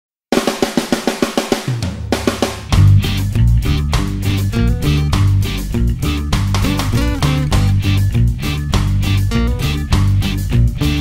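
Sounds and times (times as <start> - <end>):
fast drum fill: 0.3 - 4.4, 6.3 - 7.8
rock band playing: 2.0 - 11.0
low held bass note: 2.8 - 8.0.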